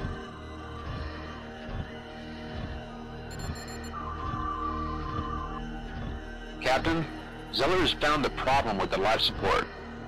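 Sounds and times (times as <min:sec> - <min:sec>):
tense sci-fi background music: 0:00.0 - 0:10.0
rapid electronic beeping: 0:03.3 - 0:05.4.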